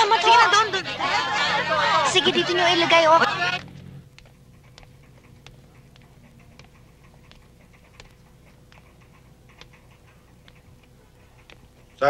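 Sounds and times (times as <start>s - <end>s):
steady low hum: 0.0s - 12.0s
sharp ticking: 3.5s - 12.0s
footsteps on hard floor: 3.6s - 12.0s.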